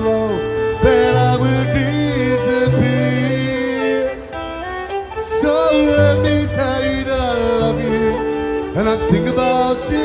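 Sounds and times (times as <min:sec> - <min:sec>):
man singing: 0:00.0 - 0:10.0
plucked string instrument: 0:00.0 - 0:10.0.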